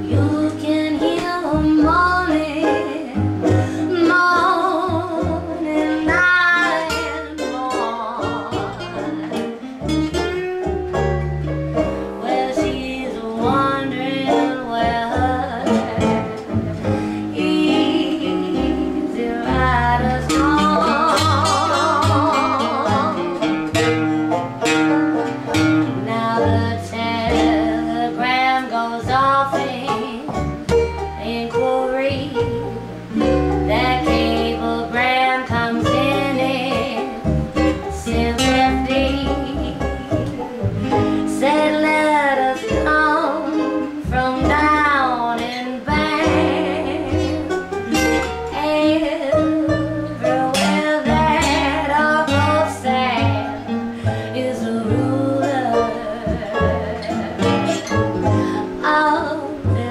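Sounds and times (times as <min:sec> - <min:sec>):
acoustic guitar: 0:00.0 - 0:59.9
banjo: 0:00.0 - 0:59.9
upright bass plucked: 0:00.0 - 0:59.9
woman singing blues: 0:00.0 - 0:59.9.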